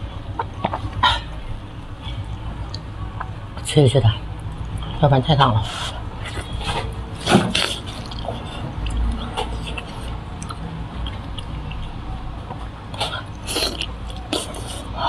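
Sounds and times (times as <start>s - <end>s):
electric fan hum: 0.0s - 15.0s
wet chewing and sucking: 5.7s - 15.0s.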